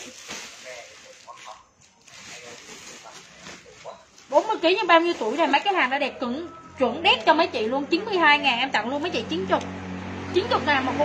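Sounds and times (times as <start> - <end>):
fabric rustling: 0.0 - 6.4.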